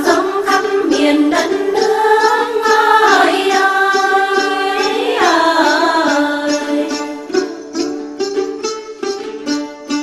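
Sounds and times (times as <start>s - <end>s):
plucked lute notes: 0.0s - 10.0s.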